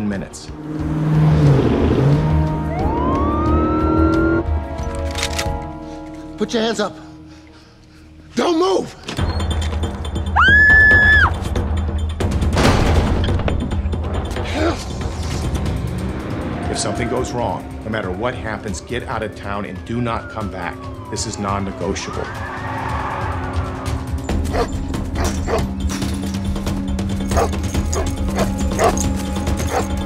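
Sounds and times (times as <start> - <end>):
low film score: 0.0 - 30.0
dog barking: 24.5 - 25.7, 27.3 - 29.0, 29.7 - 29.9.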